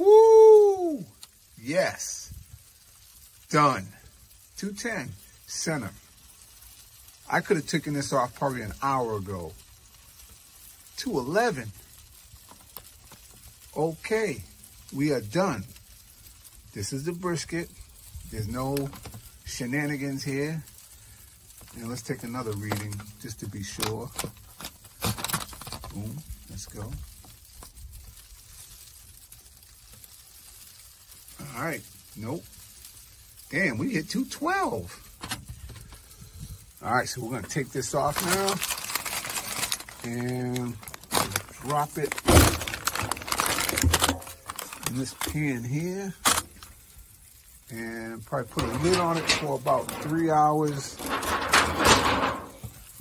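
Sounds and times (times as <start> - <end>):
foil crinkling and scraping: 1.0 - 53.0.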